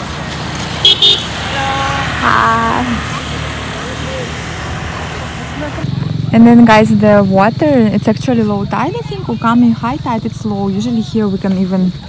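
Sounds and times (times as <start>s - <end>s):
small motorbikes passing: 0.0s - 12.0s.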